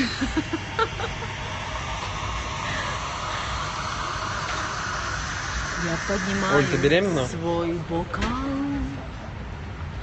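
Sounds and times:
indoor public space rumble: 0.0 - 10.0.

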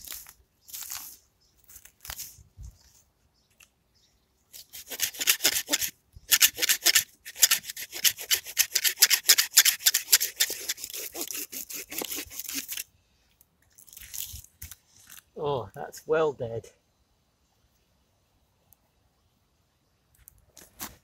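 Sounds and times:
pruning saw cutting wood: 4.6 - 12.8.

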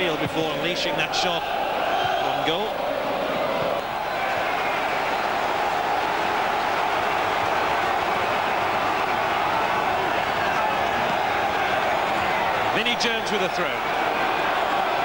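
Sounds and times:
stadium crowd voices: 0.0 - 15.0.

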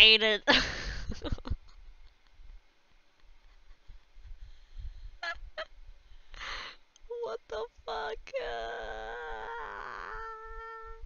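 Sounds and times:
woman laughing hard: 0.5 - 1.8, 3.4 - 4.5, 5.2 - 5.7.

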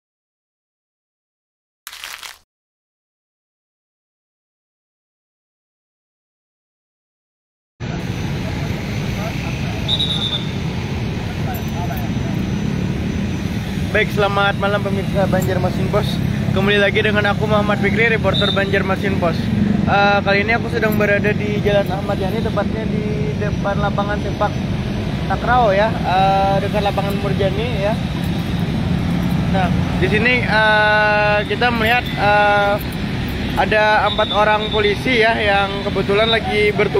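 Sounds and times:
motorcycle and car traffic rumble: 7.8 - 36.9.

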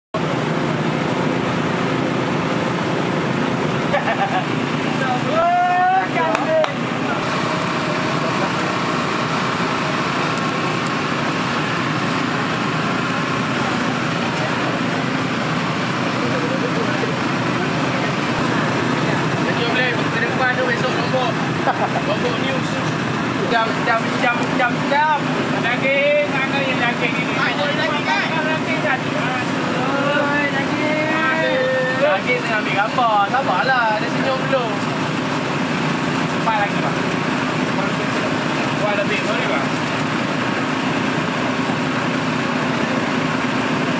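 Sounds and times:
motor-like drone: 0.2 - 43.9
people chattering: 4.2 - 35.2.

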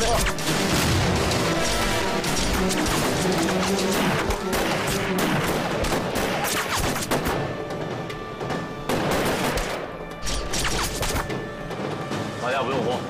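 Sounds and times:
background music: 0.0 - 13.0
rifle gunfire: 0.2 - 7.4, 8.9 - 10.9.

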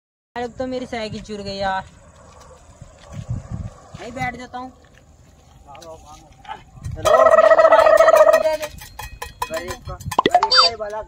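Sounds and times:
comic warbling gobble tone: 7.0 - 8.4, 10.2 - 10.7.

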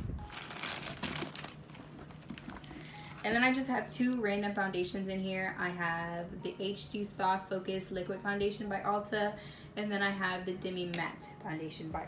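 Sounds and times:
makeup products rustling and clicking: 0.3 - 3.2.

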